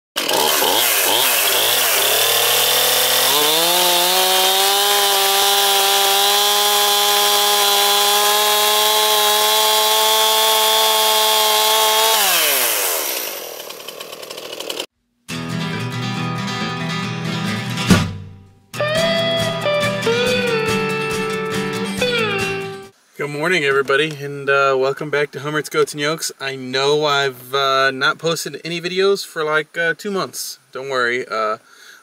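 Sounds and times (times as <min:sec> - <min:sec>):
chainsaw revving: 0:00.2 - 0:14.9
music: 0:15.3 - 0:22.9.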